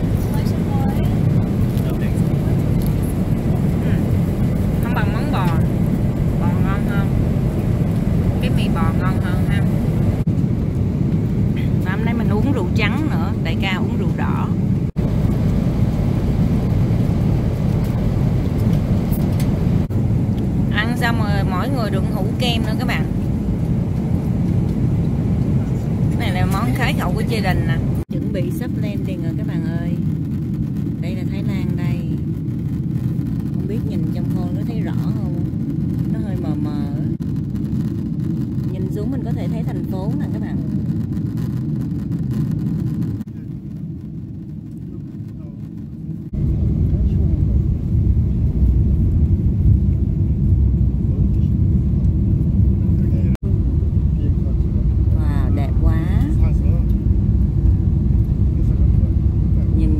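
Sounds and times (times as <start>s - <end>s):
airliner engine rumble: 0.0s - 59.9s.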